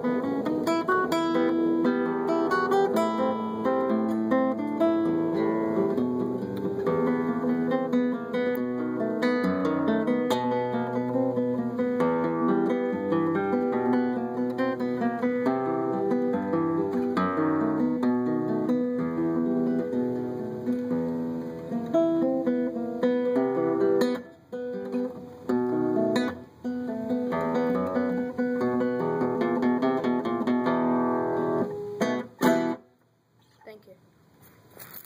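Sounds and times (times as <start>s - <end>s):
fingerpicked classical guitar: 0.0s - 33.5s.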